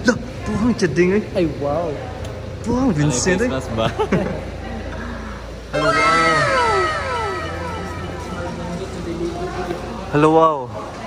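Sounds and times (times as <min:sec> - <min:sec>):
voices exclaiming in amazement: 0:05.7 - 0:09.0.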